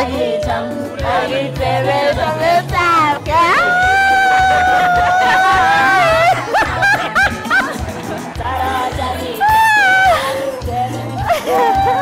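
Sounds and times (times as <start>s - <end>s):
background music: 0.0s - 12.0s
woman laughing: 3.5s - 8.4s, 11.2s - 12.0s.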